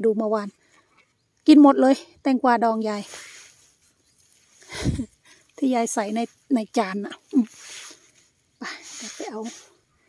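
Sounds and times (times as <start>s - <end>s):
woman speaking: 0.0s - 0.5s, 1.5s - 3.1s, 5.0s - 7.6s, 8.6s - 9.7s.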